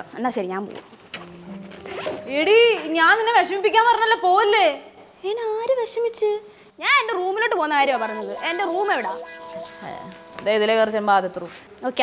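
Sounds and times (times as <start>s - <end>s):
woman speaking: 7.0s - 12.0s
background music chord: 7.9s - 11.0s.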